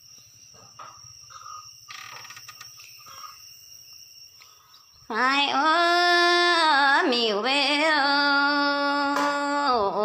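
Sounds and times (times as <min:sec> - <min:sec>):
insects chirring: 0:00.0 - 0:10.0.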